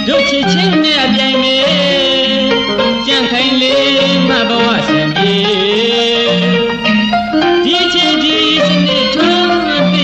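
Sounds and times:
song with vibrato melody: 0.0s - 10.0s.

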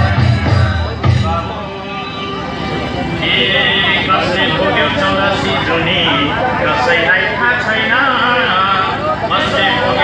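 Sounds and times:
song with heavy drum beat: 0.0s - 2.3s
voices talking: 0.0s - 10.0s.

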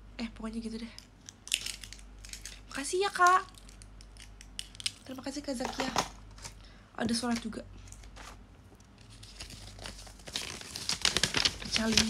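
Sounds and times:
gift packaging crinkling: 1.4s - 6.6s, 7.9s - 12.0s.

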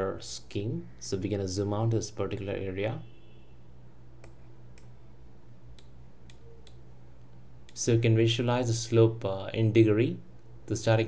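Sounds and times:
faint low hum: 0.0s - 11.0s
computer mouse clicks: 4.2s - 5.0s, 5.7s - 6.8s.

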